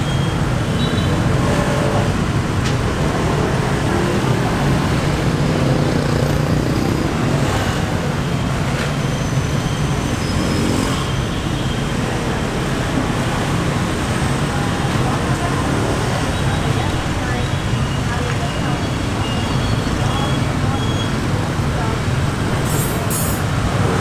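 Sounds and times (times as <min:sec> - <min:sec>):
street traffic hum: 0:00.0 - 0:24.0.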